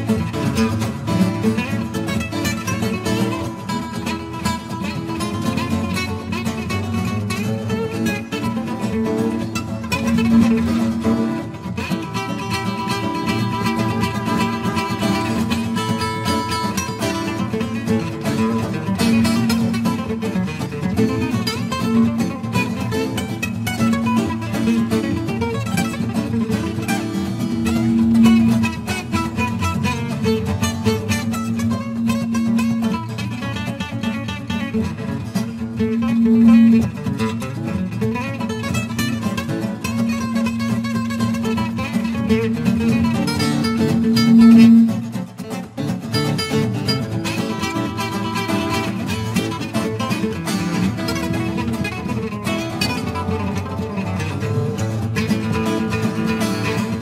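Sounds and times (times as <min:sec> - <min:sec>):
guitar bass line: 0:00.0 - 0:57.0
lead guitar picking: 0:00.0 - 0:57.0.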